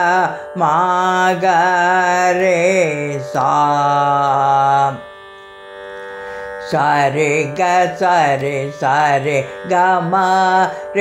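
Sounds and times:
person singing vocal exercise: 6.6s - 11.0s.

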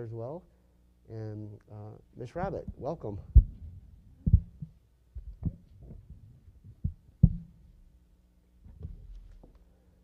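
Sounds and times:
faint low room hum: 0.0s - 10.0s
dull low thumps: 2.4s - 7.8s.

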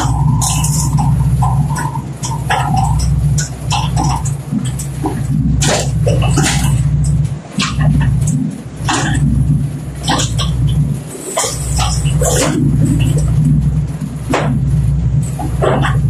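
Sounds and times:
engine low drone: 0.0s - 16.0s.

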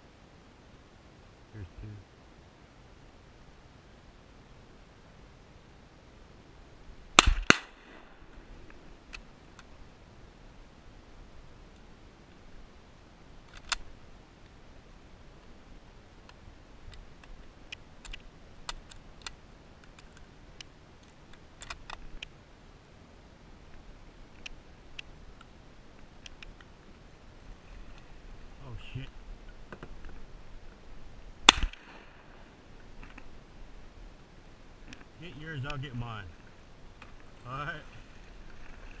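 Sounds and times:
shotgun shots: 7.2s - 8.0s, 31.5s - 32.2s
faint clicks: 8.6s - 9.7s, 16.2s - 22.4s, 23.7s - 27.0s.

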